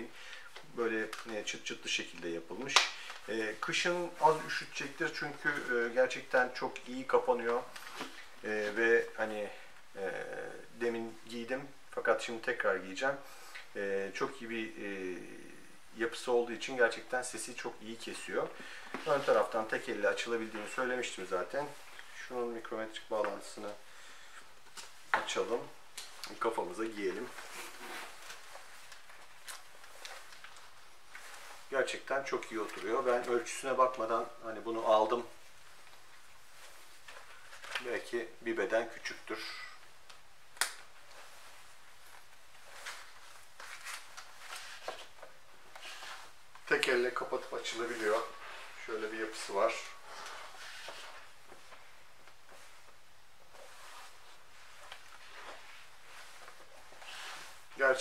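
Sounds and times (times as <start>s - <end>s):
helmet rustling and brushing: 0.0s - 9.9s, 16.9s - 58.0s
room hiss: 0.0s - 58.0s
short scrape: 57.0s - 57.6s.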